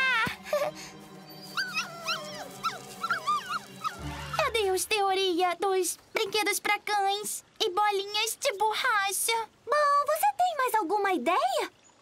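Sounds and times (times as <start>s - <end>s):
background music: 0.0s - 5.6s
cartoon dog yips and howling: 1.6s - 4.0s.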